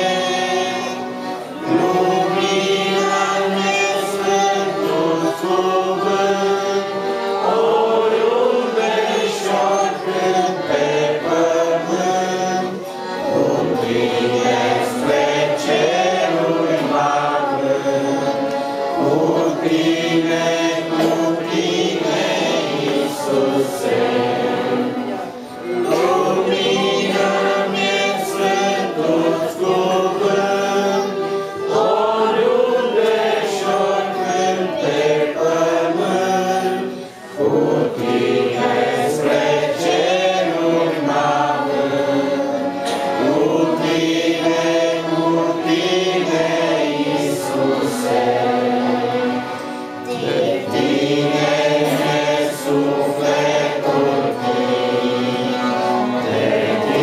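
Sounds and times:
girls singing together: 0.0 - 57.0.

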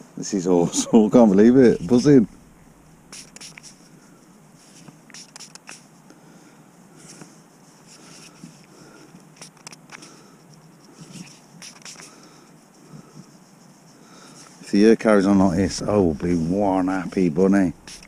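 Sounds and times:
thumb scraping soil off coin: 3.1 - 3.9, 4.6 - 5.9, 7.0 - 13.4, 14.3 - 18.0.

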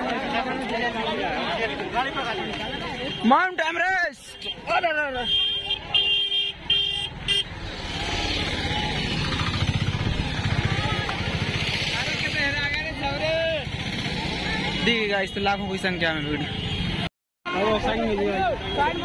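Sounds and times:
vehicle horn beeps: 5.2 - 7.5.

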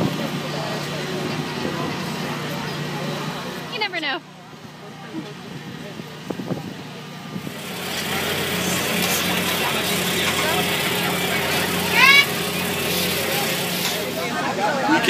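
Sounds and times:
kitchen machinery hum: 0.0 - 15.0.

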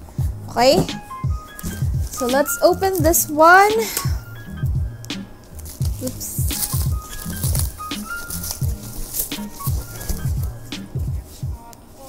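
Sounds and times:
background music with low beat: 0.0 - 12.0
crinkly wrapping sleeve rustling: 1.4 - 4.3, 5.3 - 12.0.

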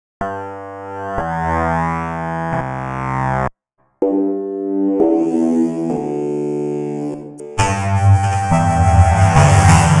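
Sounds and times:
buzzy synthesizer held note: 0.2 - 10.0.

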